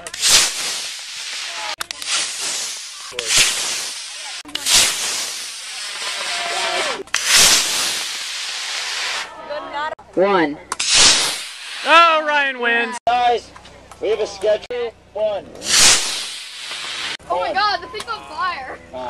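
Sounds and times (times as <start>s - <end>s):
model rocket motor rushing hiss: 0.0s - 9.3s, 15.6s - 17.2s.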